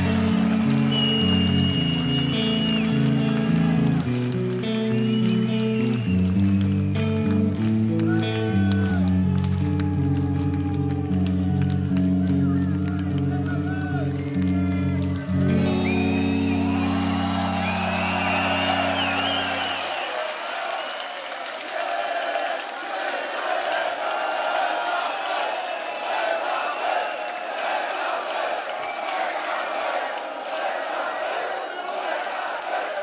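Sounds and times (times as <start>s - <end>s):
electric guitars and bass chord: 0.0s - 19.8s
arena crowd cheering: 0.0s - 33.0s.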